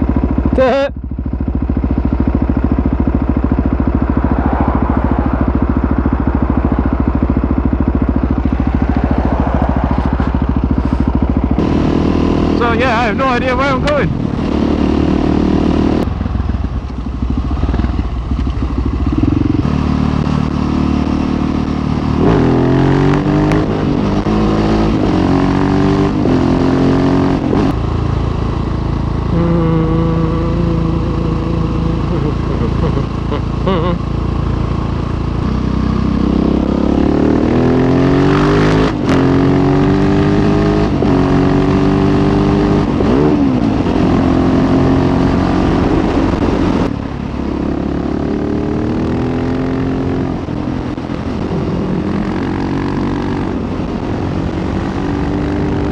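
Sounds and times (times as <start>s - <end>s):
motorcycle engine accelerating: 0.0s - 55.9s.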